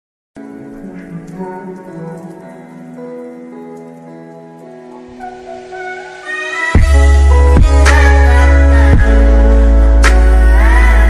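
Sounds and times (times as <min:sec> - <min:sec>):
slow soft music: 0:00.4 - 0:11.0.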